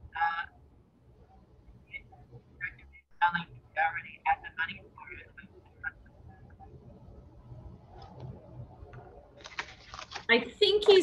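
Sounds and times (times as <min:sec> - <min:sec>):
broken speech over video call: 0:01.9 - 0:11.0.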